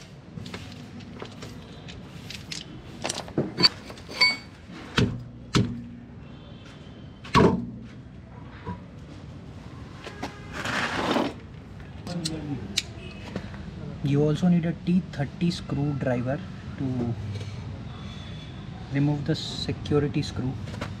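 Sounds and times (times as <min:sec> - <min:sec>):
wheel scraping off hub: 0:10.4 - 0:11.4.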